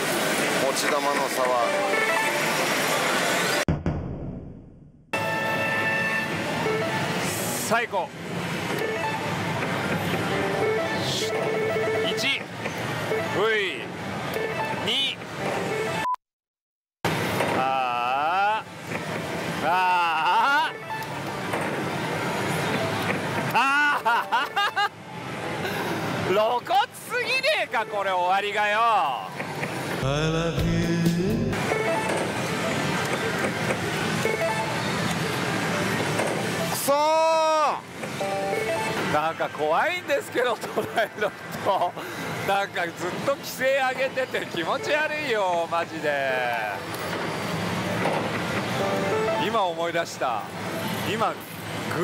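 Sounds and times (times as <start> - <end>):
slot machines electronic tunes: 5.2 - 7.3, 10.2 - 12.4, 30.1 - 33.4, 34.0 - 35.0, 38.2 - 39.4, 48.7 - 49.8
slot machine jingles and beeps: 10.3 - 12.3, 34.1 - 35.0, 38.2 - 39.8
background music: 30.0 - 32.2, 48.8 - 49.6
rising electronic sound effect: 30.0 - 32.8.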